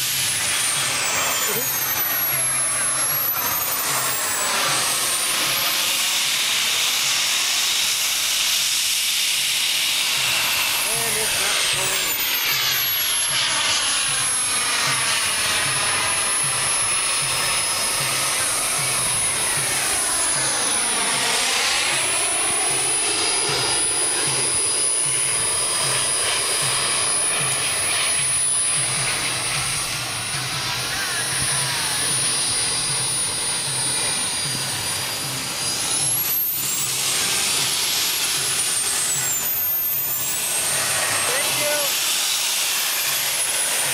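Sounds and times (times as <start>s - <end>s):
model jet turbine whine: 0.0s - 43.9s.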